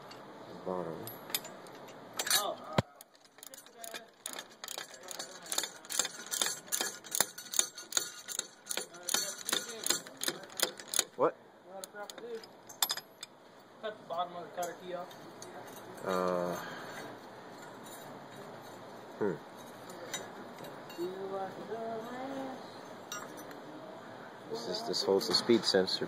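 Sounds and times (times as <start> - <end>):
light metallic clinks: 1.0 - 11.1, 23.0 - 23.6
ratchet wrench clicking: 3.0 - 11.2.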